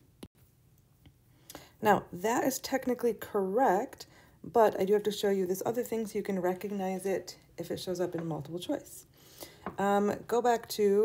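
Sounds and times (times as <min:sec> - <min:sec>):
person breathing: 0:04.1 - 0:04.4, 0:09.1 - 0:09.8.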